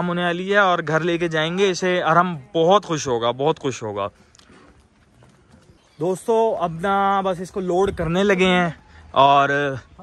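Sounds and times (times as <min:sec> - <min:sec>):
hoofbeats on dirt: 0:04.1 - 0:06.9.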